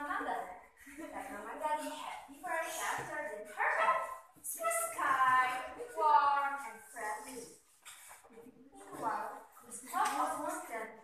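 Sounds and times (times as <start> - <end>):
girl's theatrical storytelling voice: 1.1 - 7.5.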